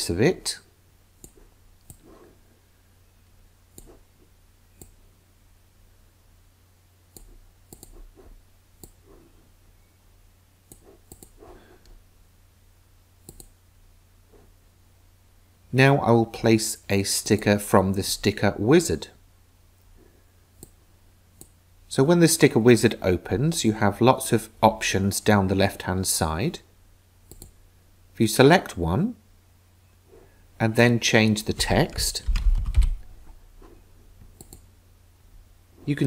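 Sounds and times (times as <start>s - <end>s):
low steady hum: 0.0s - 36.0s
computer mouse clicking: 1.2s - 2.1s, 3.7s - 4.0s, 7.1s - 8.0s, 8.8s - 9.0s, 10.7s - 12.0s, 13.2s - 13.6s, 27.3s - 27.6s, 34.3s - 34.7s.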